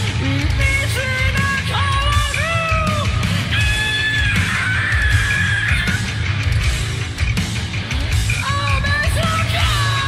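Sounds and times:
high-pitched lead vocal: 0.0s - 6.7s, 8.2s - 10.0s
live rock band: 0.0s - 10.0s.

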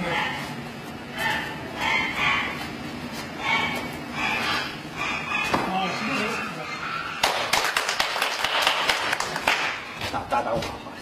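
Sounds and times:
group hand clapping: 7.2s - 9.9s.

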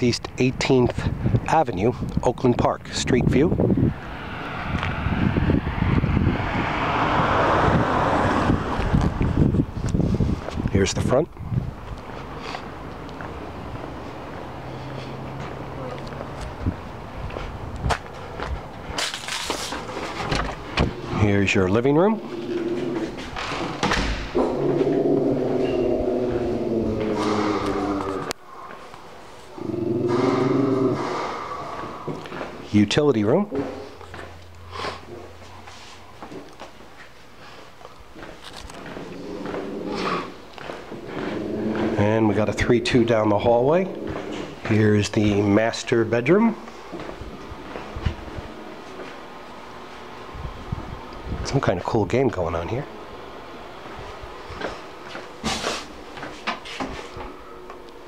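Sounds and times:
wind buffeting microphone: 0.6s - 12.9s, 16.4s - 19.0s, 19.9s - 28.5s, 47.0s - 48.8s, 50.2s - 51.8s
car driving past: 3.8s - 9.6s, 12.6s - 17.2s, 19.8s - 32.8s, 38.7s - 45.0s
dog howling: 22.2s - 23.3s, 24.3s - 32.4s, 38.9s - 40.4s.

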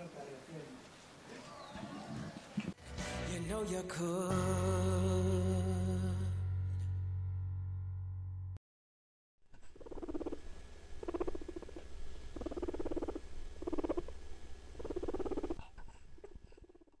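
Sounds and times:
low hum: 4.4s - 8.6s, 9.5s - 16.9s
guinea pig purring: 9.5s - 17.0s.

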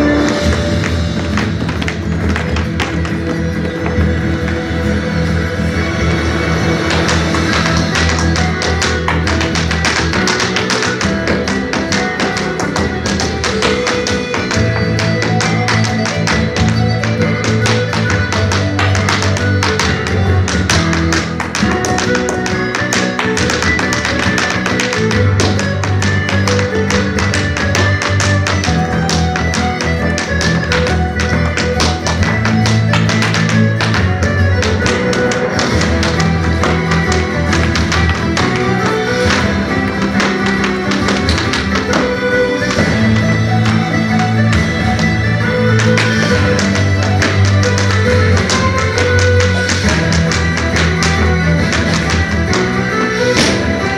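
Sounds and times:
loud recorded music: 0.0s - 53.9s
hard shoes tapping on floor: 0.2s - 4.7s, 6.8s - 53.9s.

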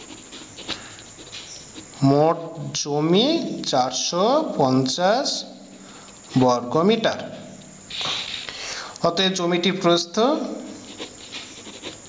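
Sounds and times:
pen scratching on paper: 0.0s - 2.1s, 5.2s - 6.5s, 10.6s - 12.0s.

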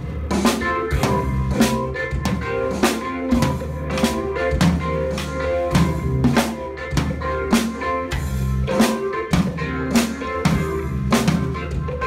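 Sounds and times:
backing track with guitar: 0.0s - 12.0s
children beating drums: 0.0s - 12.0s.

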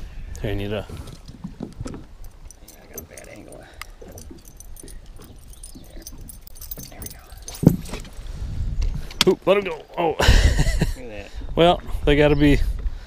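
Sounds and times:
metallic clinking and rattling: 1.2s - 8.2s.

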